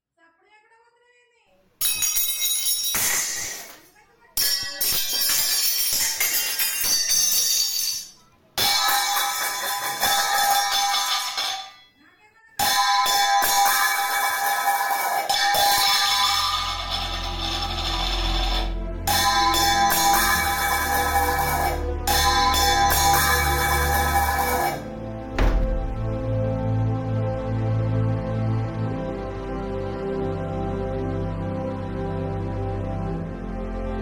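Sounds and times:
film score music: 0:15.9 - 0:34.0
loud crash with high ringing: 0:19.1 - 0:26.8.

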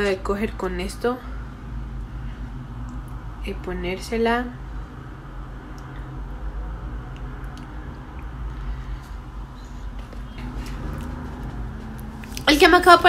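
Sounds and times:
steady low hum: 0:00.0 - 0:13.0
faint chewing: 0:07.1 - 0:12.5.

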